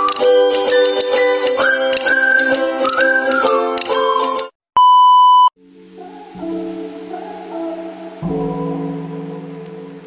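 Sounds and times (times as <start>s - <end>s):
soft music: 0.0s - 4.5s, 5.6s - 10.0s.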